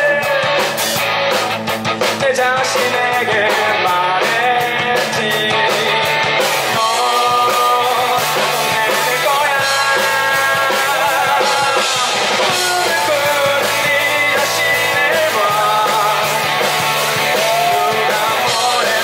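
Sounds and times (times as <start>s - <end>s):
man singing lead vocal: 0.0s - 1.0s, 2.0s - 19.0s
bass guitar: 0.0s - 19.0s
electric guitar: 0.0s - 19.0s.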